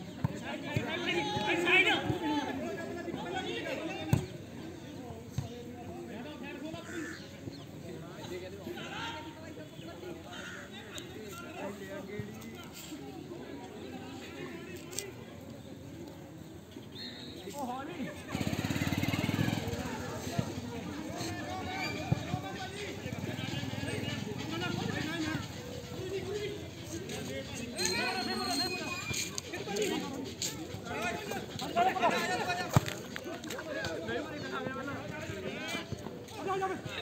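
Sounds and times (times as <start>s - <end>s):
small engine puttering: 18.3s - 20.0s.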